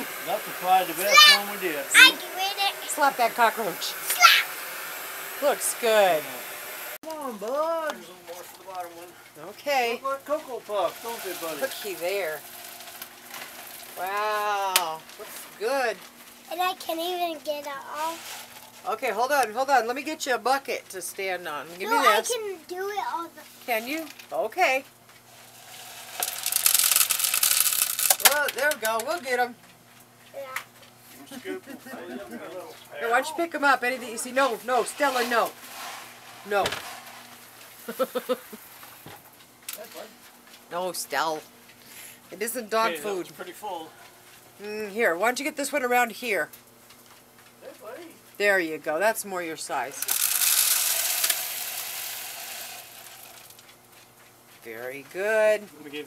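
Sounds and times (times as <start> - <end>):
potting soil hissing down a pipe: 0.0 - 20.6, 25.3 - 29.2, 33.1 - 39.0, 50.0 - 53.6
pellets pouring into plastic pipe: 10.6 - 14.1, 17.8 - 18.8, 25.4 - 28.8, 50.0 - 53.6.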